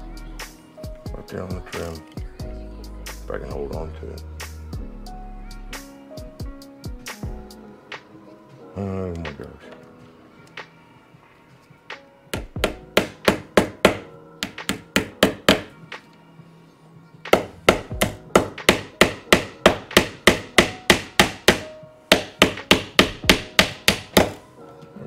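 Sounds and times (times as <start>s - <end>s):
hammer tapping a staple into wood: 12.4s - 15.7s, 17.3s - 24.4s.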